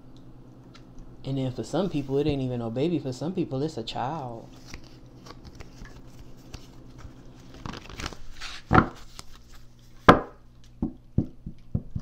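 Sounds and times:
cards slapped on table: 0:07.6 - 0:09.3, 0:10.1 - 0:11.0.

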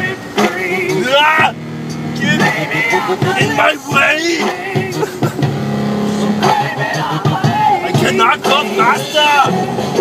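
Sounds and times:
man singing: 0:00.0 - 0:01.6, 0:02.2 - 0:05.4, 0:06.2 - 0:09.6
truck engine and road noise: 0:00.0 - 0:10.0.

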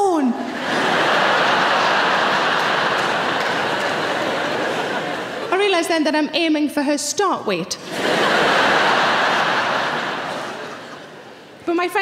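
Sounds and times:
theatre audience laughing: 0:00.4 - 0:05.6, 0:07.8 - 0:11.6.

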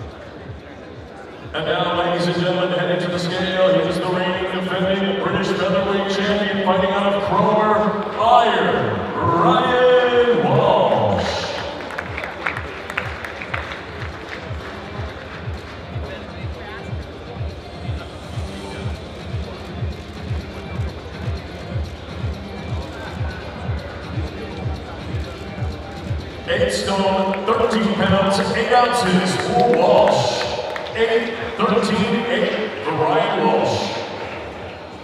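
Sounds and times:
music with low repeating beat: 0:11.5 - 0:26.7.

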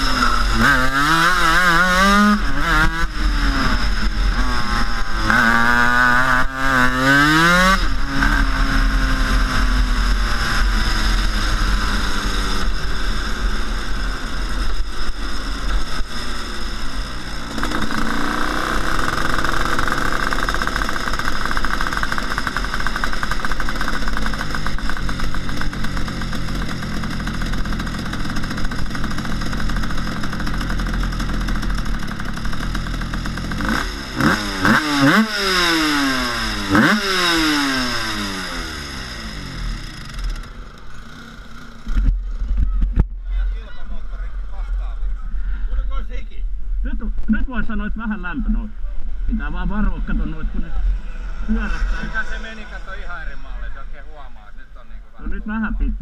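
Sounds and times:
two-stroke kart engine revving: 0:00.0 - 0:45.1, 0:48.1 - 0:56.0.

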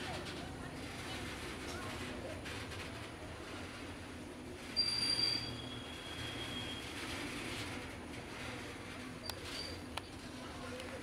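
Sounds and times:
train wheels rumbling on rail: 0:00.0 - 0:11.0
wheels squealing: 0:04.6 - 0:10.8.

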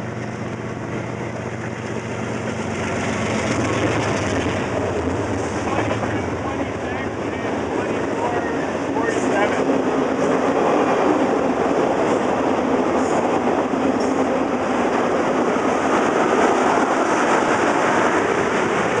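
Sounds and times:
train wheels on rails: 0:00.0 - 0:19.0.

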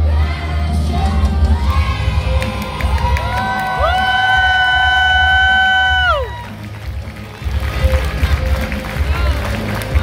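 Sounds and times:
backing track music: 0:00.0 - 0:10.0.

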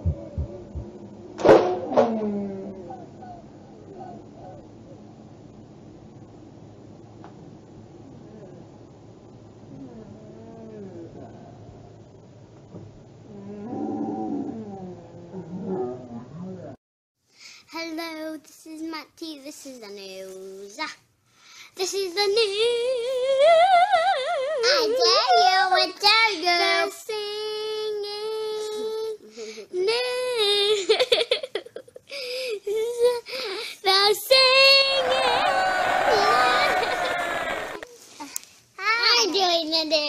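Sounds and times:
child wavering vocal sounds: 0:02.0 - 0:03.5, 0:34.4 - 0:38.1
girl singing: 0:21.8 - 0:30.9, 0:32.7 - 0:35.1.

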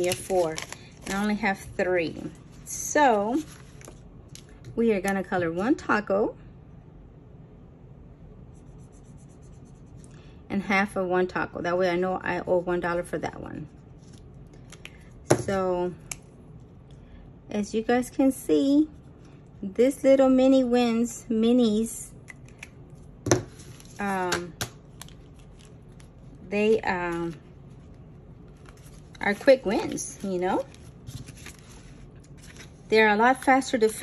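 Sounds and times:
marker scribbling on paper: 0:08.6 - 0:10.0.

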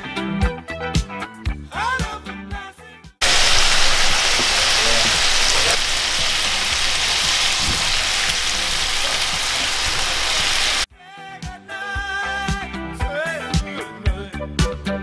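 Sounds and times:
food sizzling in a frying pan: 0:03.2 - 0:10.9.

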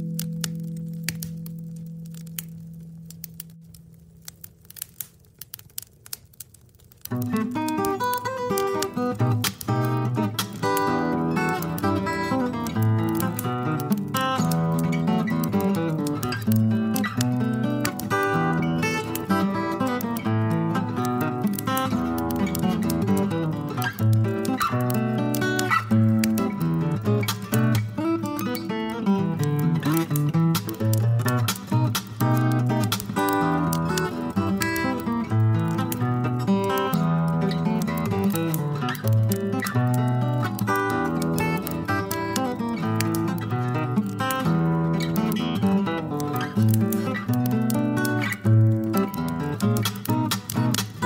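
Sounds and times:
acoustic guitar playing: 0:00.0 - 0:05.0, 0:07.1 - 0:51.0
wood stove fire crackling: 0:00.0 - 0:51.0.

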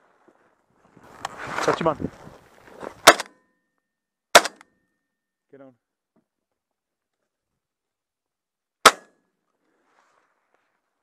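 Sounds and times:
shotgun shots: 0:03.0 - 0:03.4, 0:04.3 - 0:04.6, 0:08.8 - 0:09.1.

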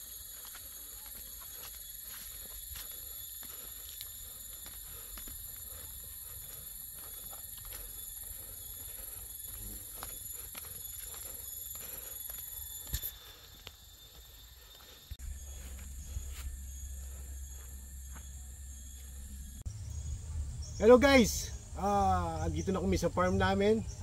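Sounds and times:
high-pitched insect chorus: 0:00.0 - 0:24.0.

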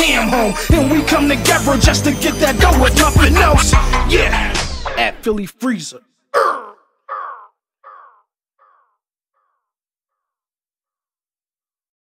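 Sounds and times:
shouted word echoing: 0:05.6 - 0:07.5.

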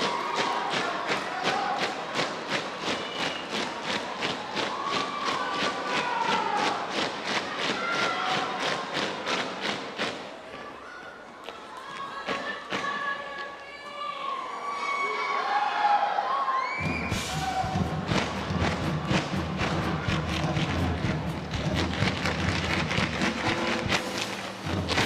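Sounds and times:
audience cheering and whistling: 0:02.8 - 0:06.8, 0:14.5 - 0:20.3
music: 0:16.8 - 0:25.0.

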